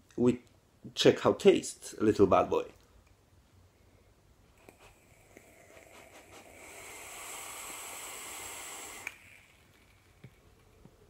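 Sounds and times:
airy hiss with thin whistle: 0:05.6 - 0:10.2
vape clicks: 0:07.5 - 0:09.5.

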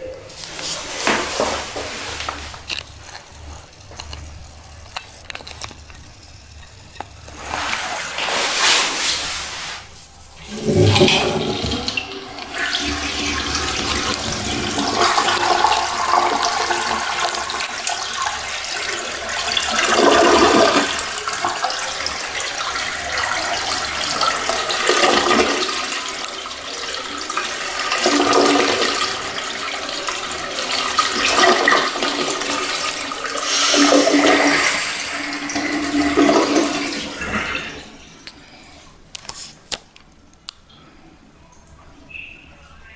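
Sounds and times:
toilet flushing: 0:00.0 - 0:38.8.

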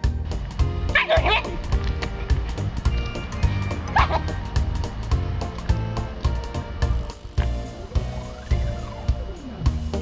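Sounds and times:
music with steady beat: 0:00.0 - 0:10.0
husky yipping: 0:00.9 - 0:01.6, 0:02.9 - 0:04.6.

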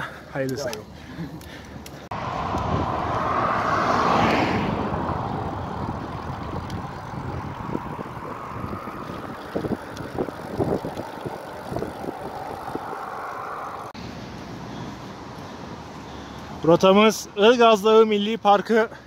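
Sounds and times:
bicycle road noise: 0:00.0 - 0:19.0
wind rushing on microphone: 0:02.1 - 0:14.0.

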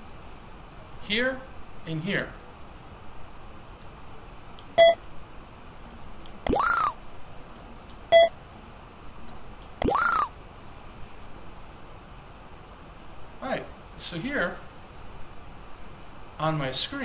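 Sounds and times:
rising and falling electronic tone: 0:06.5 - 0:07.0, 0:09.8 - 0:10.3.

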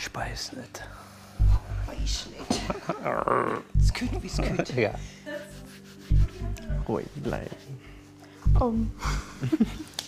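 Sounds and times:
low music drone: 0:00.8 - 0:10.0
bass thumps: 0:01.4 - 0:02.4, 0:03.8 - 0:04.7, 0:06.1 - 0:06.9, 0:08.5 - 0:09.0.

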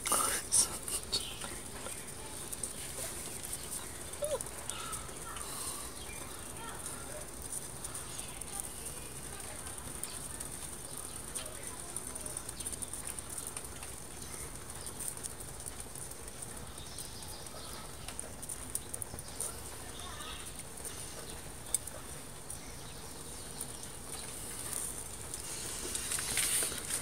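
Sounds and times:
fire crackling: 0:00.0 - 0:27.0
sharp pops of fire: 0:00.0 - 0:27.0.

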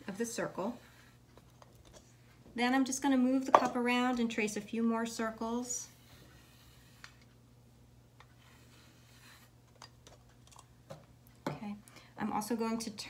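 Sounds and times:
low steady hum: 0:00.0 - 0:13.0
pencil scratching on paper: 0:08.4 - 0:09.6.

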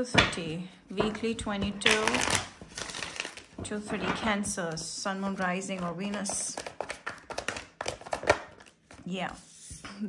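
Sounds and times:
cards being shuffled: 0:05.2 - 0:09.9.

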